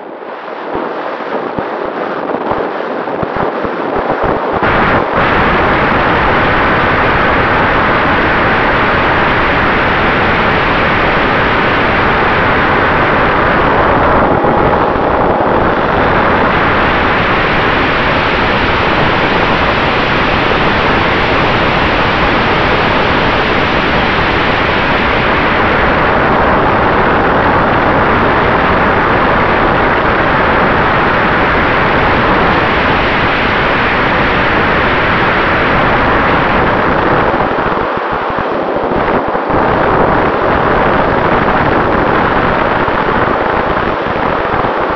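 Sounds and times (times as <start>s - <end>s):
rush of airflow and ducted fan: 0.0s - 44.9s.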